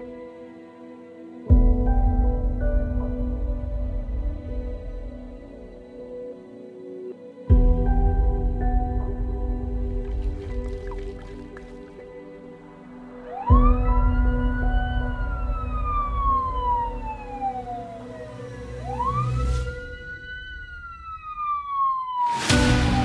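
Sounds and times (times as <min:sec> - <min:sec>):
background music: 0:00.0 - 0:23.0
wailing siren: 0:13.2 - 0:23.0.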